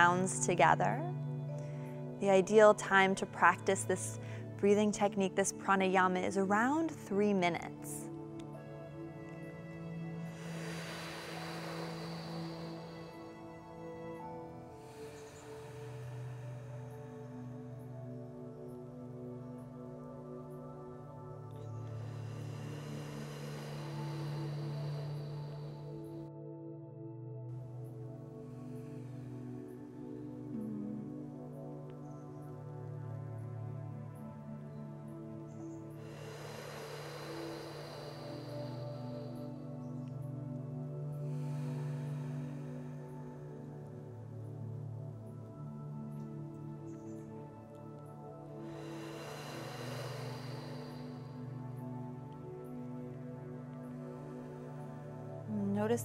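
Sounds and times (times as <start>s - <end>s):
soft ambient music: 0.0s - 56.0s
long hissing breath in: 1.2s - 56.0s
inhale through the mouth: 9.4s - 17.9s, 21.6s - 26.3s, 35.4s - 45.1s, 45.9s - 55.5s.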